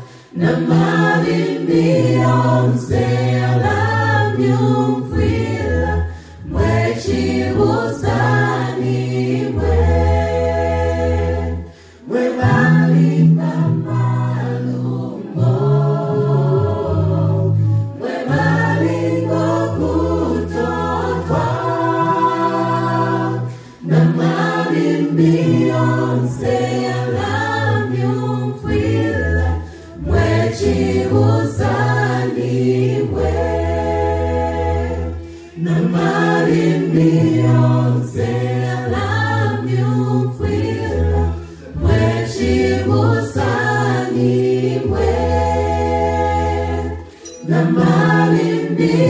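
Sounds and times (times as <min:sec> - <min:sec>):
vocal group singing in harmony: 0:00.0 - 0:49.0.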